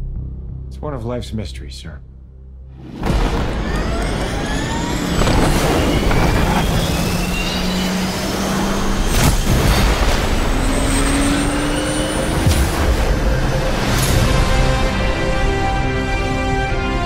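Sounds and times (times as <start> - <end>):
trailer music: 0.0 - 17.0
jet engines whining: 2.8 - 17.0.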